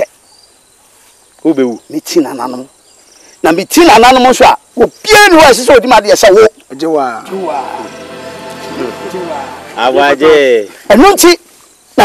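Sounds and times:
insects chirring: 0:00.0 - 0:12.0
people speaking: 0:03.5 - 0:11.4.

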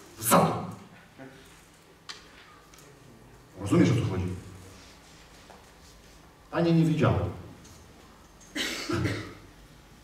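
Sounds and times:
man coughing: 0:08.5 - 0:09.5.

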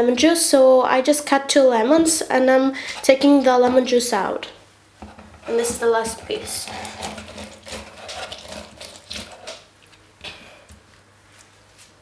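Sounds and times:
lemon grinding on citrus reamer: 0:05.0 - 0:09.8.

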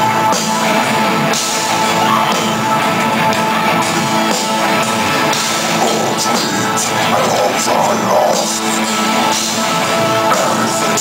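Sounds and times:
bass guitar: 0:00.0 - 0:11.0
distorted guitars: 0:00.0 - 0:11.0
drums with cymbal strokes: 0:00.0 - 0:11.0
growled vocal: 0:05.7 - 0:09.0.

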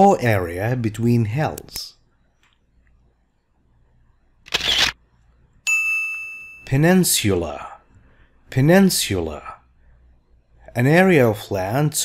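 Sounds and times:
camera shutter sound effect: 0:04.4 - 0:05.0.

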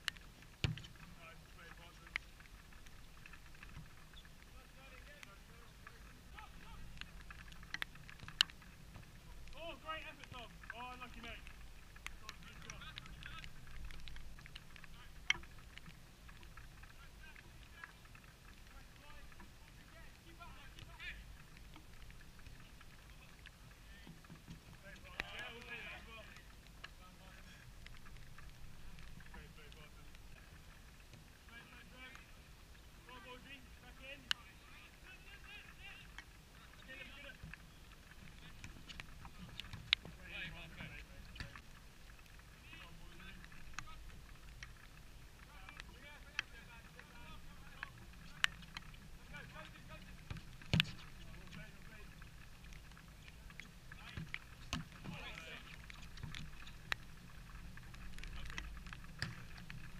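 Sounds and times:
low steady rumble: 0:00.0 - 0:59.9.

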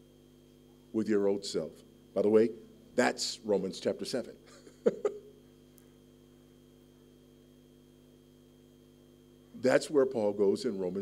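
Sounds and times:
faint steady tonal hum: 0:00.0 - 0:11.0
man chuckling: 0:04.4 - 0:05.4.

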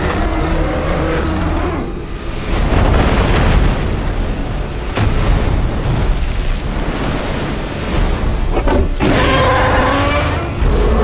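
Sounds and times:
crashing water: 0:02.1 - 0:09.9.

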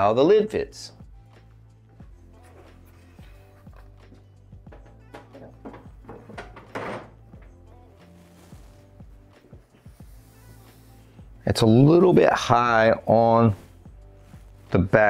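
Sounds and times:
quiet background music: 0:00.0 - 0:15.0.

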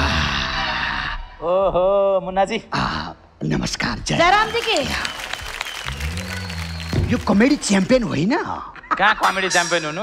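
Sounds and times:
audience applauding: 0:04.2 - 0:08.2.

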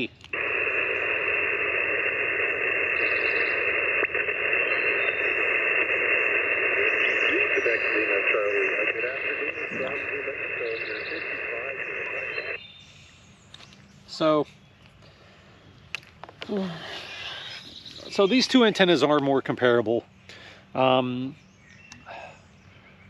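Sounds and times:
faint distant radio voice: 0:00.0 - 0:12.6
radio receiver hiss: 0:00.0 - 0:12.6, 0:16.0 - 0:21.1.

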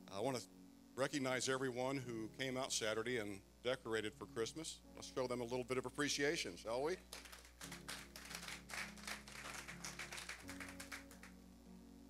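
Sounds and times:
soft sustained background chords: 0:00.0 - 0:12.0
congregation applauding: 0:07.0 - 0:11.4.

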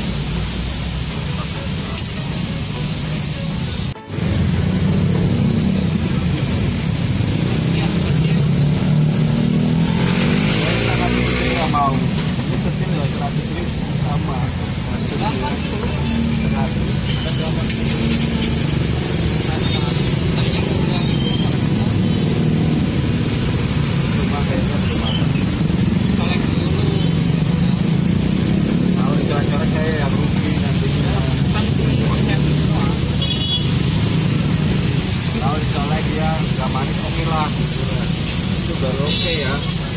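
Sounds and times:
motorcycles: 0:00.0 - 0:39.9
road traffic rumble: 0:00.0 - 0:39.9
people talking: 0:01.0 - 0:04.2, 0:05.7 - 0:39.9.

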